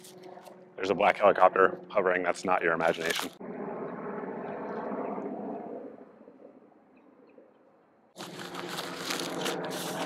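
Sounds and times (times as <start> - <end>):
helicopter hovering: 0.0 - 7.5, 8.2 - 10.0.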